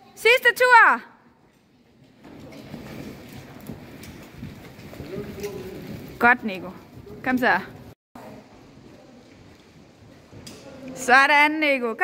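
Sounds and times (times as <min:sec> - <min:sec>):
horse hooves on sand: 0:01.9 - 0:07.9.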